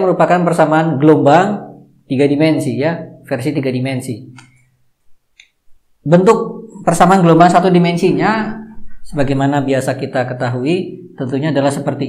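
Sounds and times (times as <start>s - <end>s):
man's voice: 6.1s - 12.0s.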